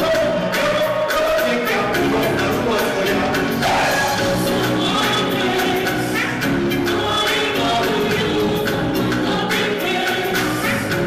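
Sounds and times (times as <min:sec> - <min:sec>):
live concert music over pa: 0:00.0 - 0:11.0
steady drumbeat: 0:00.0 - 0:11.0
voices singing together: 0:00.0 - 0:11.0.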